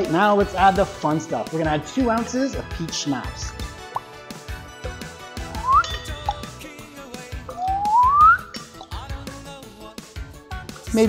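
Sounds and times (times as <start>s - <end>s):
background music with steady beat: 0.0s - 11.0s
rising whistle-like tones: 5.6s - 6.1s, 7.5s - 8.5s.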